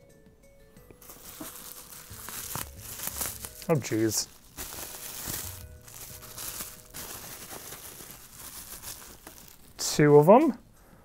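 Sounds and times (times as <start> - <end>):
bubble wrap crinkling: 1.0 - 10.0.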